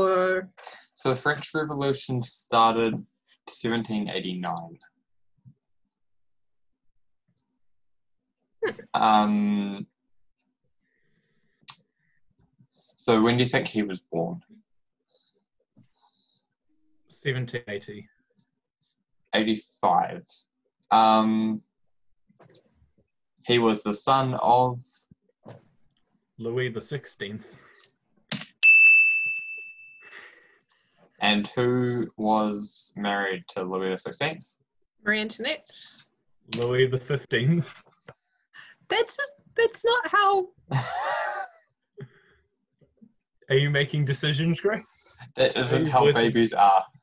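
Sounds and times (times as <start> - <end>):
bell-like ding: 28.6 - 30.1.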